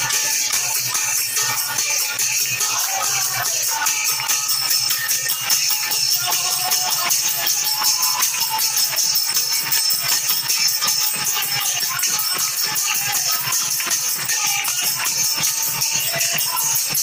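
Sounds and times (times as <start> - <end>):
brass hand cymbals jingling: 0.0 - 17.0
fast steady beat: 0.0 - 17.0
voices singing through microphone: 0.0 - 17.0.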